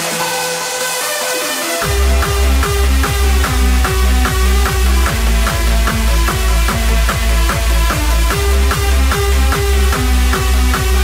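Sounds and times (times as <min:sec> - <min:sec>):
hardstyle dance music: 0:00.0 - 0:11.0
sharp percussion: 0:00.0 - 0:11.0
synth tones: 0:00.0 - 0:11.0
distorted kick drum: 0:01.8 - 0:11.0.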